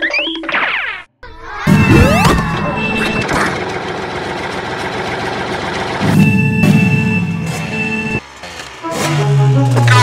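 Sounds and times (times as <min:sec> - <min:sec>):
tractor engine rumbling: 0:01.6 - 0:09.1.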